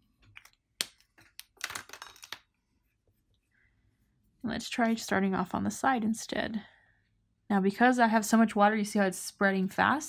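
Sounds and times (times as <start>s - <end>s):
art supplies clicking on tabletop: 0.2s - 2.5s.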